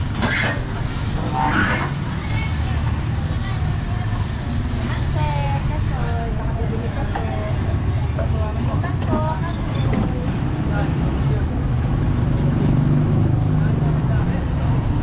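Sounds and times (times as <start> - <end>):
people talking: 1.2 - 11.7, 13.4 - 15.0.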